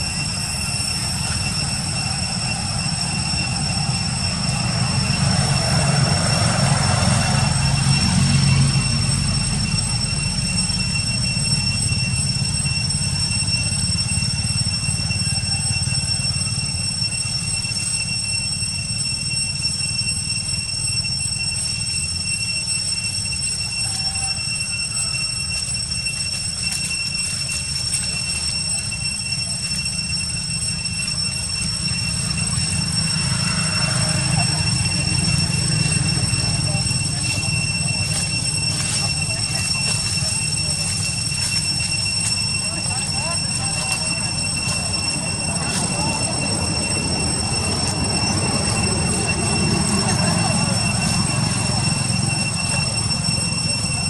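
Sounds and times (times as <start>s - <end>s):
low rumbling noise: 0.0s - 20.6s
high-pitched whine: 0.0s - 54.0s.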